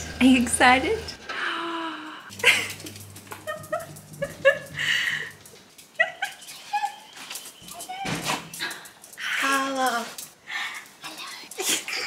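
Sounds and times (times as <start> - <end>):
dog whining and yipping: 6.3 - 8.5.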